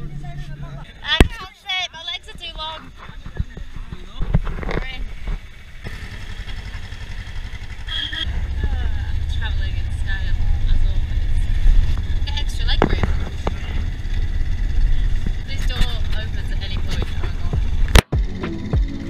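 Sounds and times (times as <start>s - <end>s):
van engine and road rumble: 0.0s - 19.0s.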